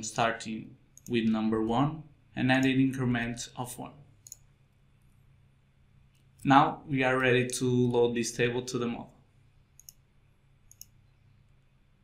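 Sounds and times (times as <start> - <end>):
computer mouse click: 1.0 - 1.4, 4.2 - 4.5, 9.8 - 10.0, 10.7 - 11.0.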